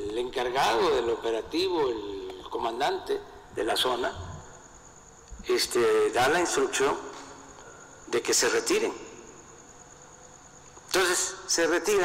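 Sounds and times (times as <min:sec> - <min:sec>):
man speaking: 0:00.0 - 0:04.5, 0:05.5 - 0:07.2, 0:08.1 - 0:09.1, 0:10.9 - 0:12.0
faint room hiss: 0:00.0 - 0:12.0.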